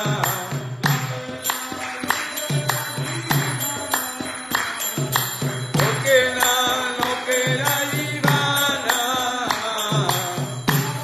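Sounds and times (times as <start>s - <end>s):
mantra singing: 0.0s - 11.0s.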